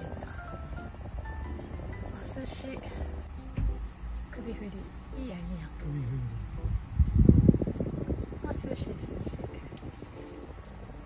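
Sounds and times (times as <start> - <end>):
desk fan blowing on microphone: 5.0 - 11.0.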